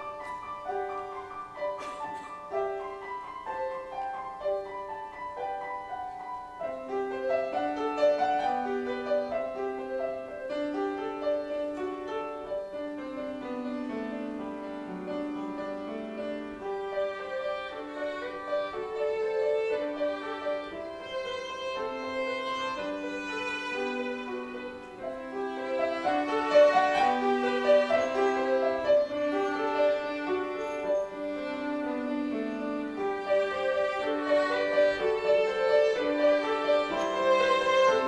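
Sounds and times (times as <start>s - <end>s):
piano accompaniment: 0.0s - 38.0s
violin melody: 0.0s - 38.0s.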